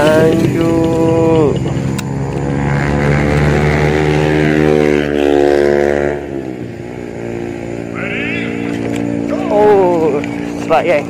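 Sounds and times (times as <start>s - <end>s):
motorcycle engine running: 0.0s - 11.0s.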